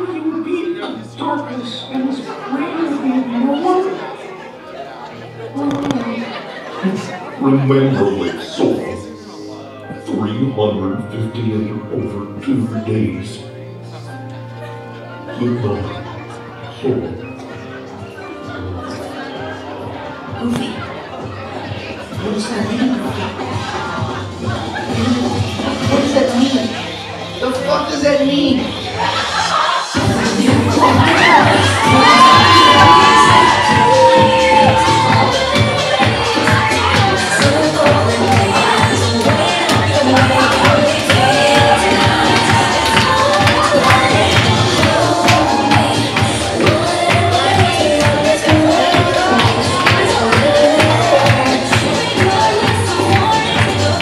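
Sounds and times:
voice speaking over sound system: 6.8 - 9.4, 10.0 - 13.6
dance music with steady beat: 17.9 - 54.0
audience cheering and screaming: 28.7 - 54.0.

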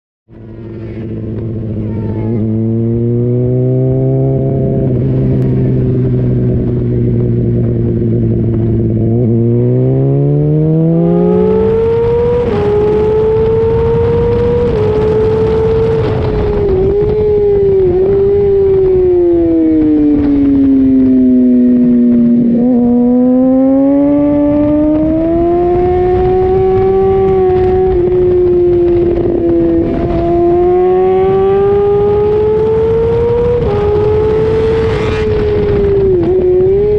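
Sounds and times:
motorcycle engine accelerating: 0.3 - 36.9
wind rush: 0.4 - 36.9.

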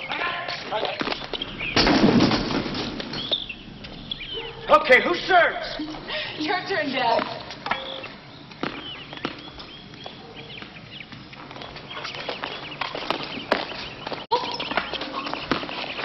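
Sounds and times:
high squeaky chirps: 0.0 - 1.9, 3.1 - 6.0, 7.6 - 16.0.

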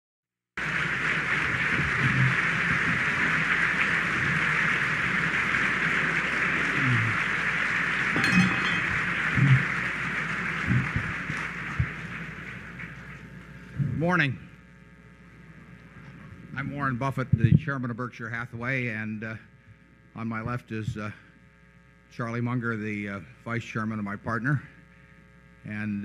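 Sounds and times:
audience applauding: 0.6 - 13.7.

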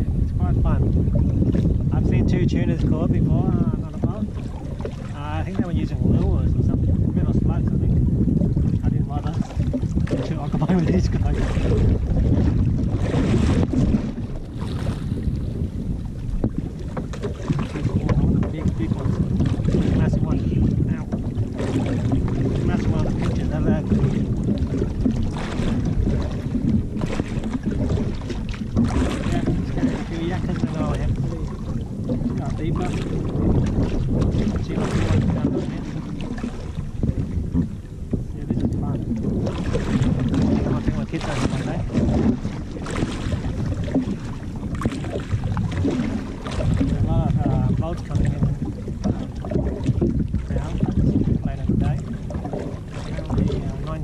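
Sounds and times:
sea washing around hull: 0.0 - 54.0
wind buffeting microphone: 0.0 - 54.0.

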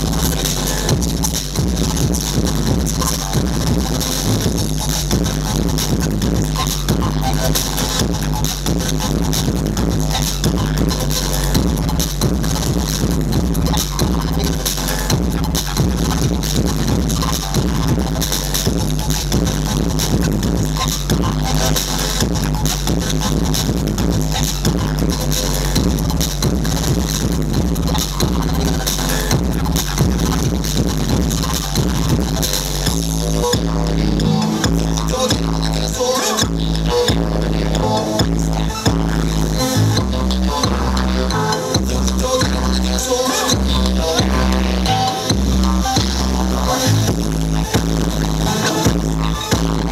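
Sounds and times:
heavy bass: 0.0 - 49.9
loud breakbeat dance music: 0.0 - 49.9.

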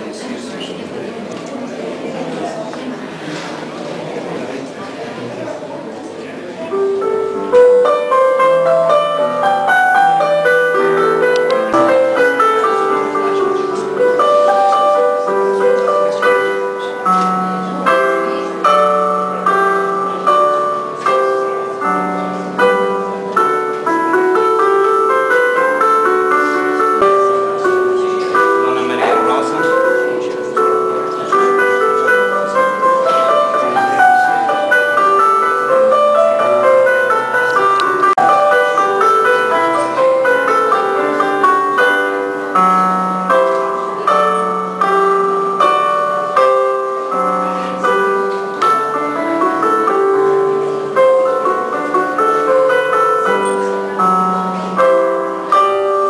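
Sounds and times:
slow piano chords: 0.0 - 56.0.

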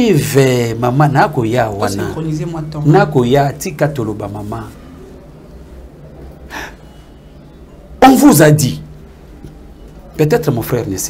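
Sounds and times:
low steady hum: 0.0 - 11.0
sharp intake of breath: 6.5 - 7.3.

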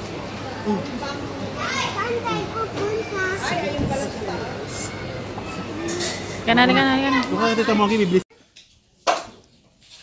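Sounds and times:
child squealing and babbling: 4.8 - 6.2.

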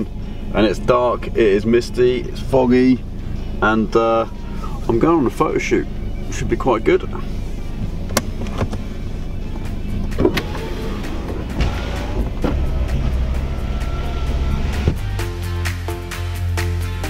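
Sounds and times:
car engine and road rumble: 0.0 - 17.0
background music: 3.4 - 17.0.

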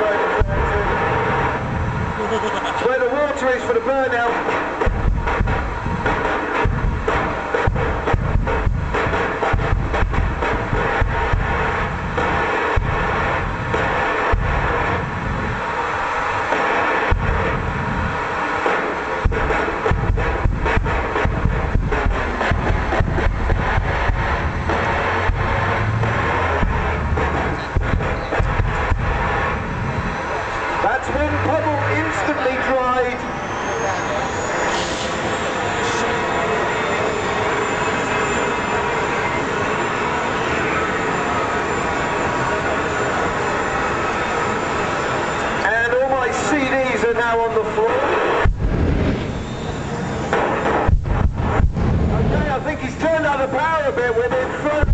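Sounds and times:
jet turbine engine whine: 0.0 - 54.9
wind buffeting microphone: 0.4 - 2.5, 4.6 - 16.5, 17.1 - 18.4, 19.2 - 32.3, 48.4 - 50.2, 50.8 - 52.7.

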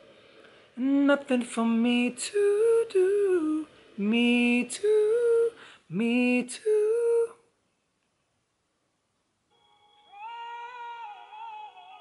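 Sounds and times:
man humming high note: 9.6 - 12.0.

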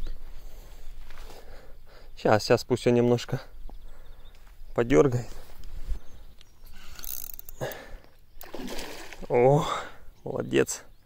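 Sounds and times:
fish thrashing at water surface: 8.4 - 9.3
water splash: 8.4 - 9.4.

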